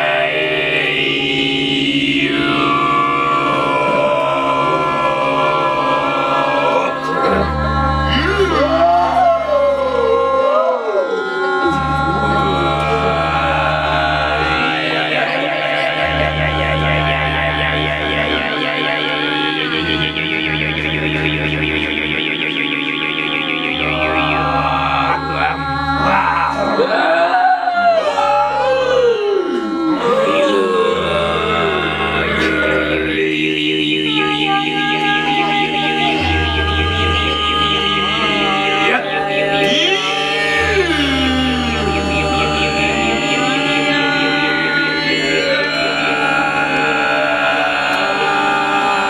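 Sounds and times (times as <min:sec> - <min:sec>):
didgeridoo drone: 0:00.0 - 0:49.0.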